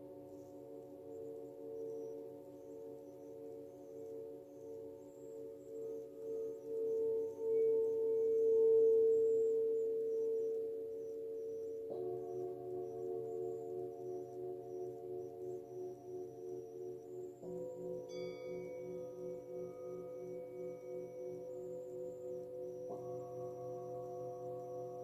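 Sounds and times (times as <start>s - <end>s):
singing bowl ringing tone: 0.0s - 25.0s.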